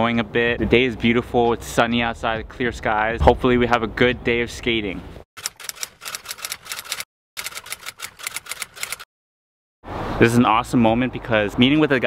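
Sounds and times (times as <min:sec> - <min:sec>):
typewriter key clacks: 0:05.4 - 0:09.1.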